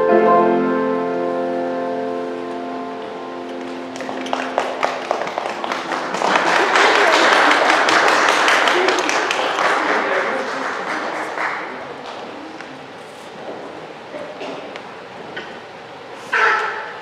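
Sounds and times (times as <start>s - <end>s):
piano and choir chord: 0.0s - 4.0s
congregation applauding: 3.5s - 13.0s.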